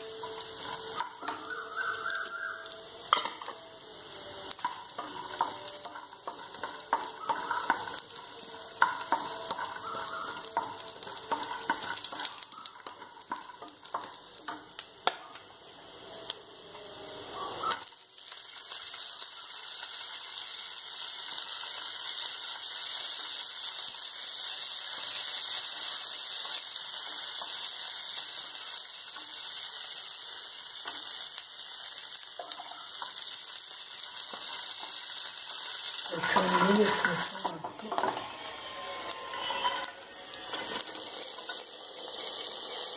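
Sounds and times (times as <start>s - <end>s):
nuts sizzling in a pan: 0.0s - 42.9s
wooden spatula scraping a pan: 36.0s - 42.9s.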